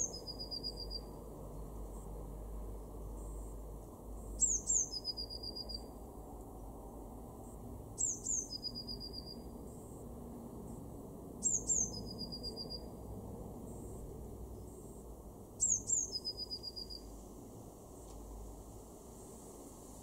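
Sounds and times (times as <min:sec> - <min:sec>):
blue tit singing: 0:04.4 - 0:05.8, 0:08.0 - 0:09.4, 0:11.4 - 0:12.9, 0:15.6 - 0:17.0.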